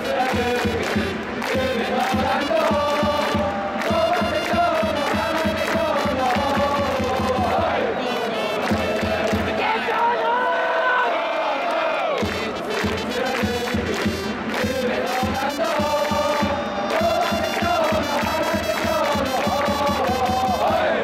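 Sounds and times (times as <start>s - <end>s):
crowd chanting: 0.0s - 21.0s
steady drumbeat: 0.1s - 7.8s, 8.6s - 9.6s, 12.2s - 21.0s
trumpets playing: 1.0s - 6.3s, 12.3s - 20.6s.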